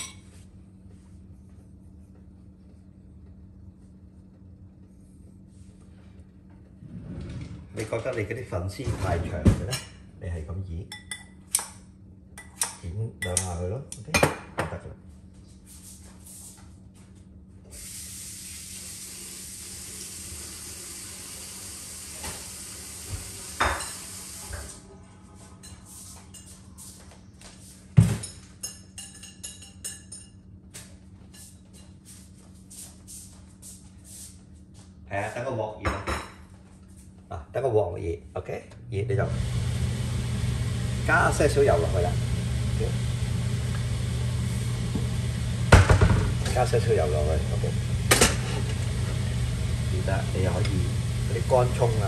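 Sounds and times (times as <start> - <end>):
clinking bowls and utensils: 0.0 - 0.3, 28.2 - 30.4.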